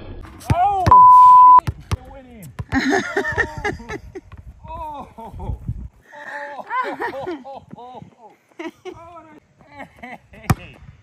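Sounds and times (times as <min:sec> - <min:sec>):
people laughing and exclaiming: 0:02.8 - 0:10.5.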